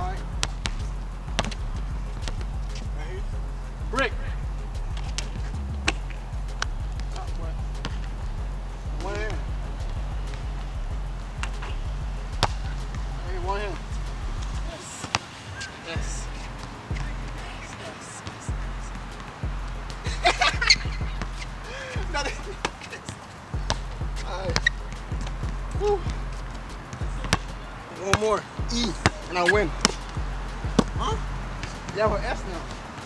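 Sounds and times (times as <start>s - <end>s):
background music with bass line: 0.0s - 15.0s, 15.9s - 33.0s
basketball bouncing on asphalt: 0.1s - 3.0s, 4.2s - 15.3s, 18.3s - 33.0s.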